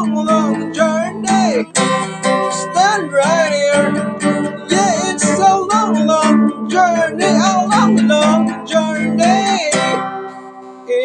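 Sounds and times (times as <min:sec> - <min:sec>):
strummed guitar chords: 0:00.0 - 0:11.0.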